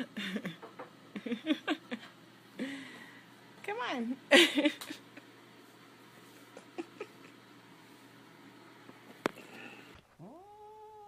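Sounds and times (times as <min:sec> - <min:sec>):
cat meowing: 0:10.2 - 0:11.0.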